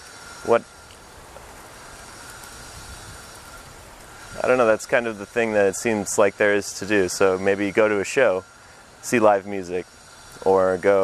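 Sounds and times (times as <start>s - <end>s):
low rumble and hiss: 0.0s - 11.0s.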